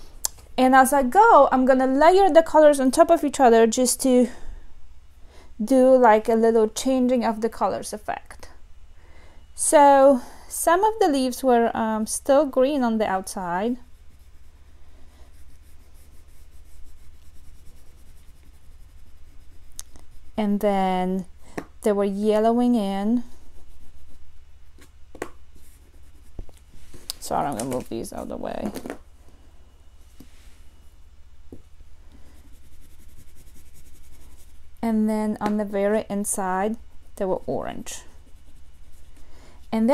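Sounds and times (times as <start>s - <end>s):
oil pastel scribbling on paper: 13.1s - 20.6s, 23.2s - 24.4s, 25.6s - 26.4s, 32.2s - 34.7s, 37.1s - 39.2s.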